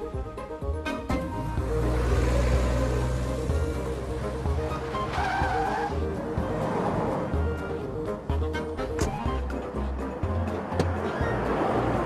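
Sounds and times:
motor vehicle running: 0.3s - 12.0s.

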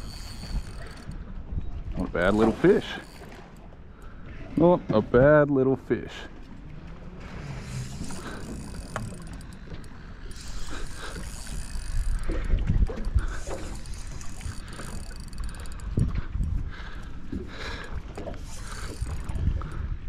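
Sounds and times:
water lapping against boat hull: 0.0s - 20.0s.

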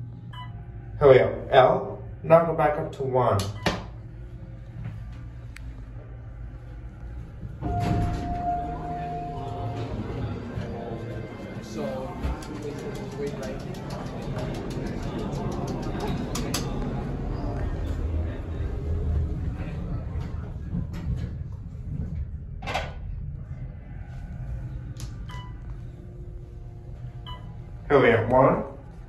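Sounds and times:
elevator humming: 0.0s - 29.0s
steady tone: 4.0s - 19.6s
background voices: 8.2s - 20.9s
scattered clicks: 12.2s - 16.8s.

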